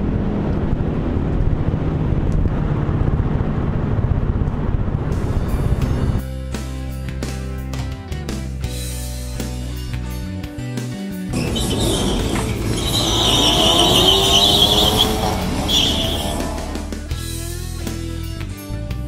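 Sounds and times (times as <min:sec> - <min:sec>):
background music: 0:05.2 - 0:19.0
tyres squealing: 0:11.3 - 0:17.0
car engines revving: 0:11.3 - 0:17.1.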